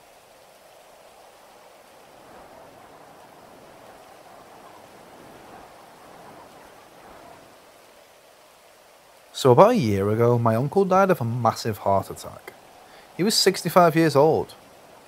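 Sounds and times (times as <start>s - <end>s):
faint rain: 0.0s - 15.0s.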